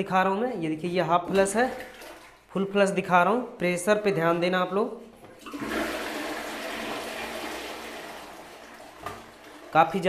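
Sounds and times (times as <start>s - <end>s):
toilet flushing: 5.4s - 10.0s.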